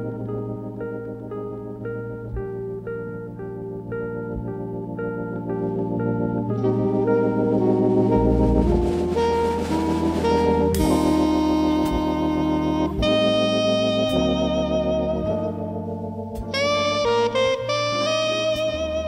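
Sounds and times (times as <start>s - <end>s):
electric bass: 0.0s - 19.0s
organ: 0.0s - 19.0s
drums and cymbals: 8.6s - 12.1s.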